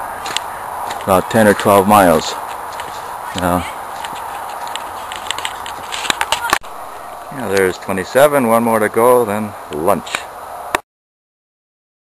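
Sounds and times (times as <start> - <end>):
footsteps crunching on forest trail: 0.0 - 7.9
steady background hiss: 0.0 - 10.8.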